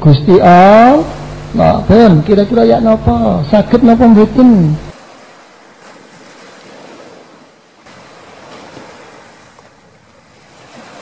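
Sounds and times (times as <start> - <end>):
ocean surf breaking: 0.4 - 11.0.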